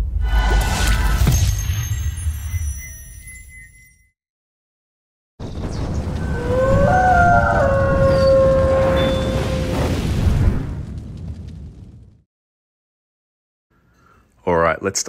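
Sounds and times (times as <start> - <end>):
deep rumbling boom: 5.4 - 12.2.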